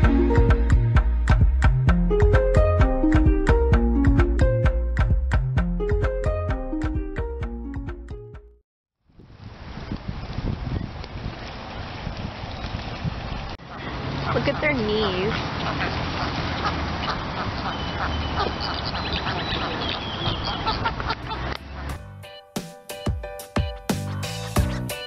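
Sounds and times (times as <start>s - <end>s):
background music: 0.0s - 8.6s, 21.6s - 25.0s
flamingos honking: 13.6s - 22.0s.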